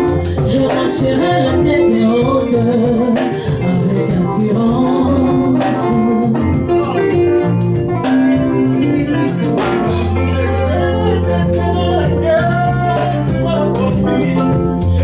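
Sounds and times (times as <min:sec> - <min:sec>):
woman singing into a microphone: 0:00.0 - 0:07.6
live band with guitar and drums: 0:00.0 - 0:15.0.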